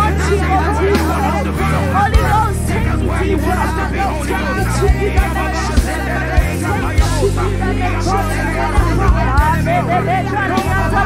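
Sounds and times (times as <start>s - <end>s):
many voices praying aloud: 0.0s - 11.0s
slow worship music: 0.0s - 11.0s.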